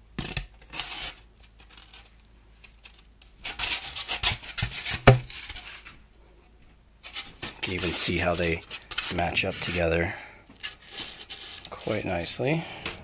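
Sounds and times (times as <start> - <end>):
thump: 5.0 - 5.3.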